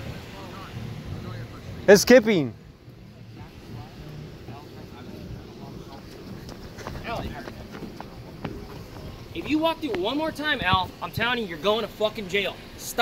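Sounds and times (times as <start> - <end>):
distant voices talking: 0.0 - 13.0
footsteps on asphalt: 5.8 - 11.4.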